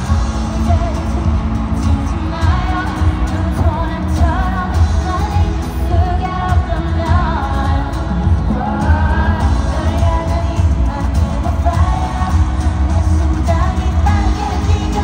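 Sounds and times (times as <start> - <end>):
women singing: 0.0 - 15.0.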